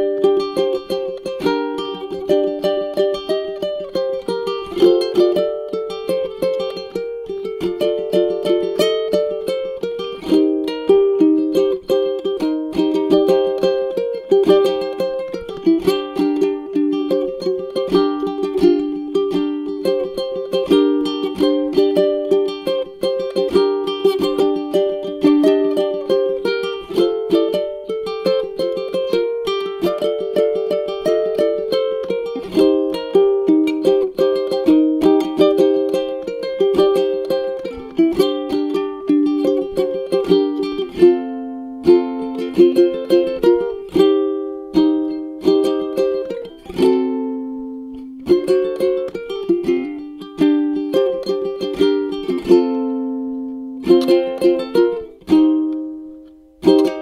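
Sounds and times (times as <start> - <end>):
ukulele fingerpicking: 0.0 - 57.0.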